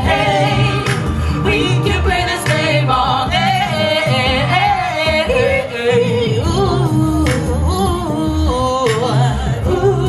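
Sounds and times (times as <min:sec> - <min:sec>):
music with steady bass: 0:00.0 - 0:10.0
woman singing with vibrato: 0:00.0 - 0:10.0.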